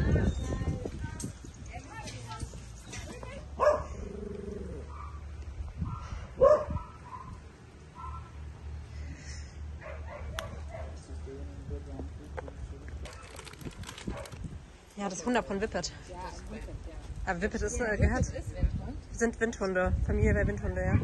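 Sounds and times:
dog barking: 0:03.6 - 0:04.0, 0:04.9 - 0:05.2, 0:05.9 - 0:07.4, 0:08.0 - 0:08.3, 0:09.8 - 0:11.0.

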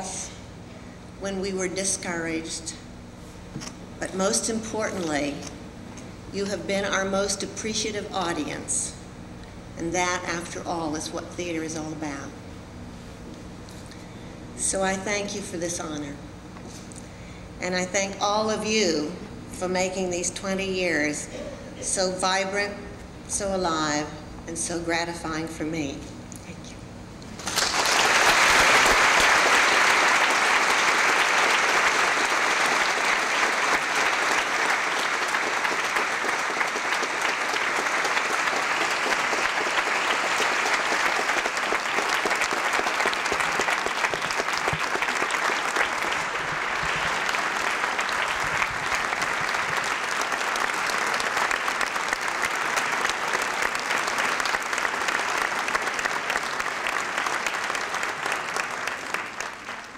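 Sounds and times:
large audience applauding: 0:27.4 - 0:59.9.

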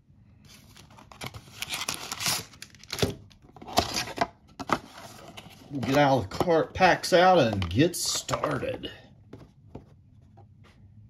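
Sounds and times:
foil packs crinkling and rustling: 0:00.7 - 0:03.0.

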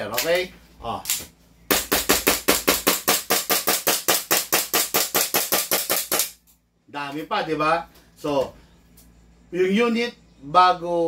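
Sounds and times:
airsoft pistol rapid cracks: 0:01.7 - 0:06.4.

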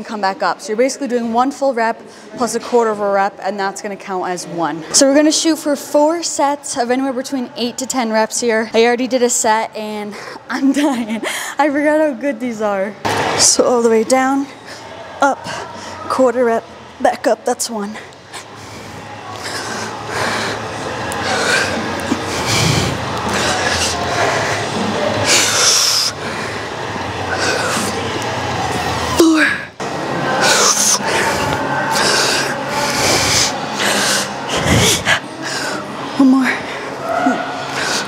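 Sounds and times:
woman breathing hard: 0:18.3 - 0:28.0.

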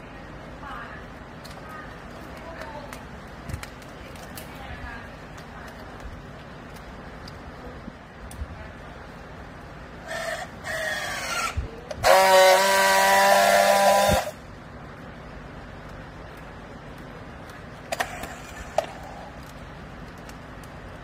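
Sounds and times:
strapping tool motor whine: 0:10.0 - 0:14.4
strapping tool welding drone: 0:10.0 - 0:14.5.

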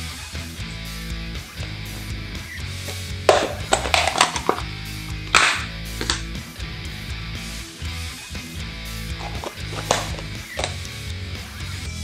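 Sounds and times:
background music: 0:00.0 - 0:12.0
plastic container knocks and rustles: 0:03.3 - 0:04.7, 0:09.2 - 0:10.8.

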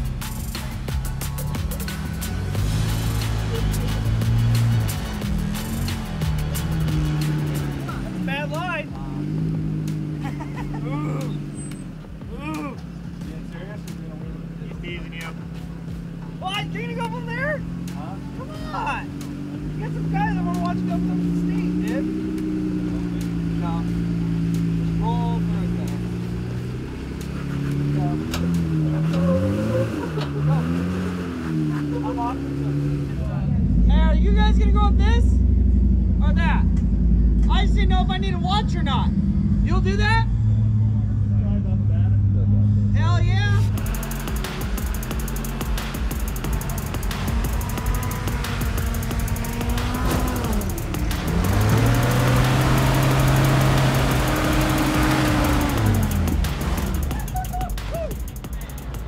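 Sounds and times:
voices calling: 0:00.0 - 0:35.5, 0:42.9 - 0:59.0
off-road vehicle engine revving: 0:00.0 - 0:59.0.

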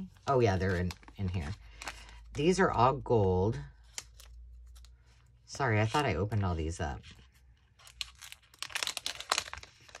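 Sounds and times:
plastic bag crinkling: 0:07.8 - 0:10.0.

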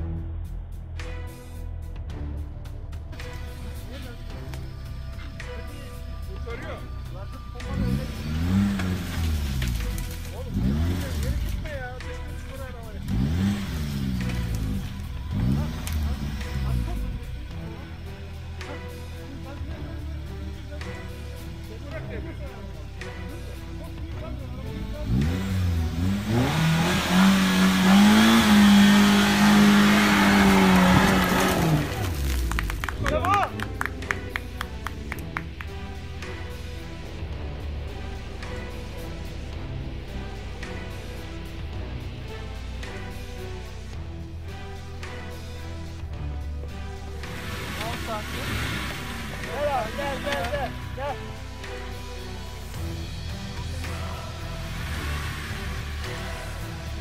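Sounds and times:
faint background music: 0:00.0 - 0:57.0
engine revving: 0:03.1 - 0:57.0.

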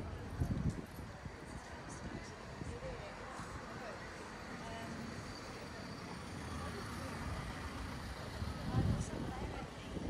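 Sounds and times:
passers-by talking: 0:00.0 - 0:10.0
traffic rumble: 0:00.0 - 0:10.0.

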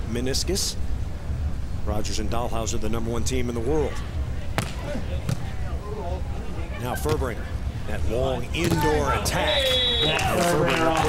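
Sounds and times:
volleyball struck by hand: 0:04.6 - 0:05.4.

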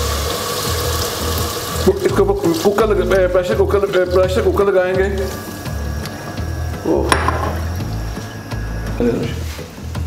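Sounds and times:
water trickling into metal pot: 0:00.0 - 0:04.6
soft background music: 0:00.0 - 0:10.0.

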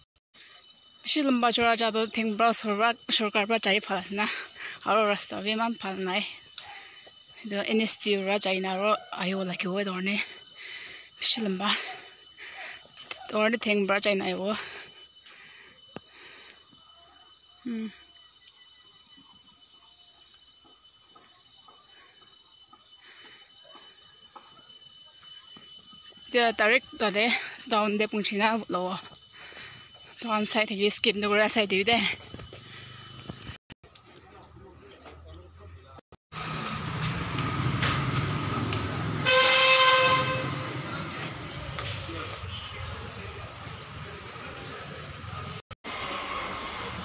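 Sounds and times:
street traffic rumble: 0:34.2 - 0:47.0
vehicle horn: 0:39.1 - 0:40.8.

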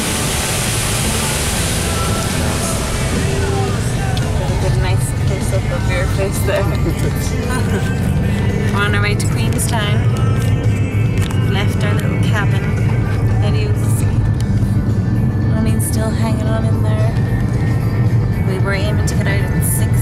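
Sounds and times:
background music: 0:00.0 - 0:20.0
car road and engine noise: 0:00.0 - 0:20.0.

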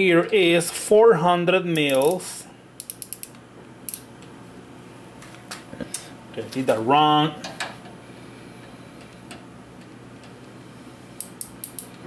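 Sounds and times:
faint workshop hum: 0:00.0 - 0:12.0
small sharp ratchet clicks: 0:01.8 - 0:02.2, 0:02.8 - 0:04.1, 0:11.2 - 0:12.0.

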